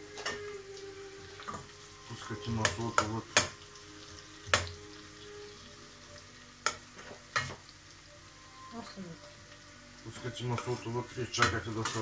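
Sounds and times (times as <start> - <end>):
food sizzling in pot: 0.0 - 12.0.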